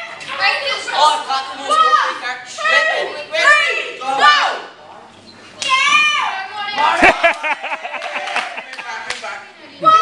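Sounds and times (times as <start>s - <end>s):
children at play: 0.0s - 4.8s.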